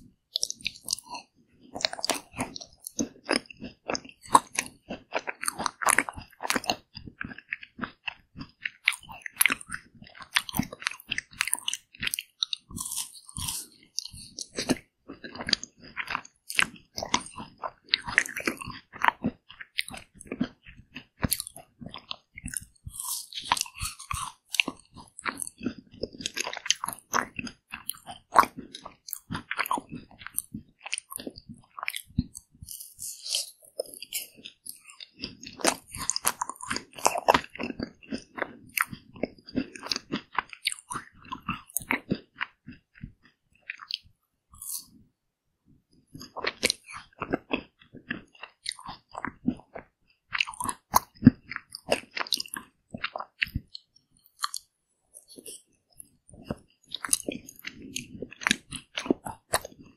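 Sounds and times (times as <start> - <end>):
crunchy ice cream bar chewing: 0.3 - 45.0, 46.0 - 59.9.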